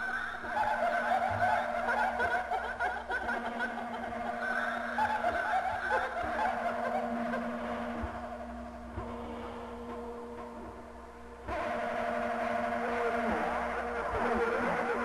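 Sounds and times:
steady low hum: 0.0s - 15.0s
rapid warbling laugh-like sounds: 0.4s - 7.7s, 13.1s - 15.0s.

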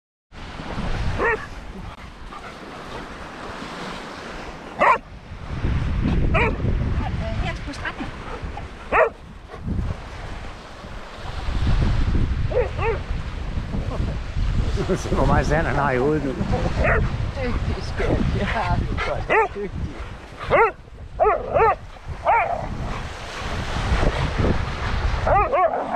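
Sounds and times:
small waves washing: 0.4s - 25.9s
wind rumbling on microphone: 0.4s - 25.9s
dog barking: 1.2s - 1.5s, 4.8s - 5.1s, 6.3s - 6.6s, 8.9s - 9.2s, 12.5s - 13.0s, 16.8s - 17.1s, 19.3s - 19.6s, 20.4s - 23.1s, 25.2s - 25.9s.

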